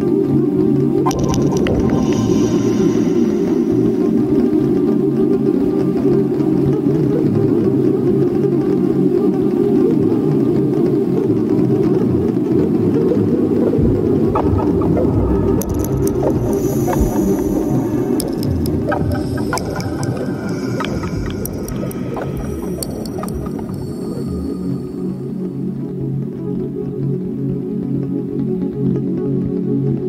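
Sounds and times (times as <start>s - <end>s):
low ambient drone: 0.0s - 27.8s
high shimmer: 1.1s - 5.0s, 14.4s - 25.9s
thin higher tones: 1.1s - 5.0s, 14.2s - 25.7s.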